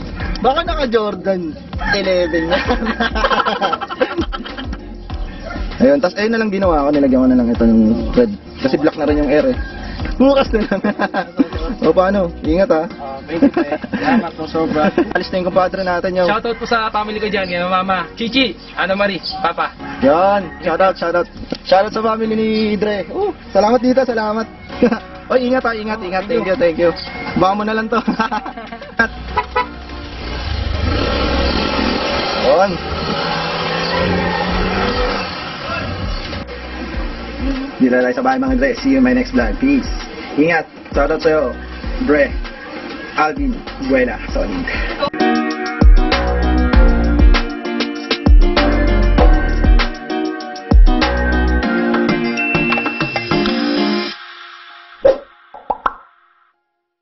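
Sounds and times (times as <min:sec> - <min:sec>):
motor scooter engine revving: 0:29.1 - 0:37.8
cartoon plop sound effect: 0:55.0 - 0:56.1.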